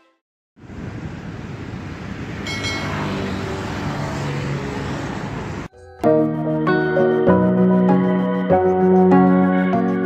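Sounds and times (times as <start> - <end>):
road traffic: 0.6 - 7.6.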